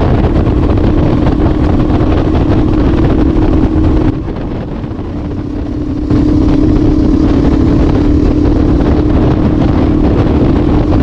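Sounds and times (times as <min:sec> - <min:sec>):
motorcycle engine cruising: 0:00.0 - 0:11.0
wind rumble on microphone: 0:00.0 - 0:11.0.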